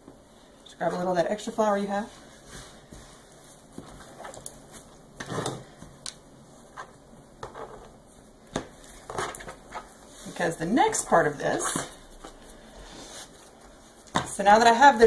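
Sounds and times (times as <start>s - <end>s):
dough rubbing and rustling: 0.3s - 15.0s.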